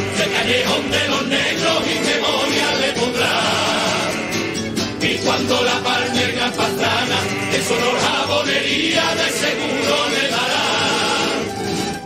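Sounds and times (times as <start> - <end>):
choir singing in chorus: 0.0 - 12.0.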